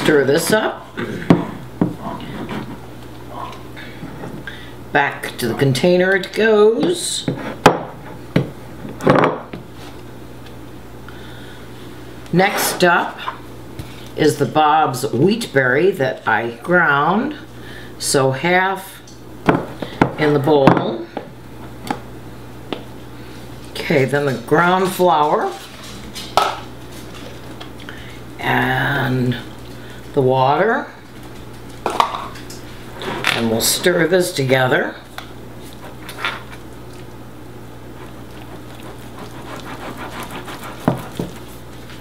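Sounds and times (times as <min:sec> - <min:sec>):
steady low hum: 0:00.0 - 0:42.0
spatula scraping: 0:35.6 - 0:37.1, 0:37.9 - 0:42.0.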